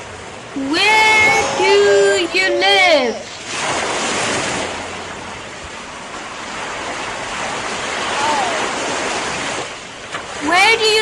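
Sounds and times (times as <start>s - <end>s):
person speaking: 0.6s - 3.4s.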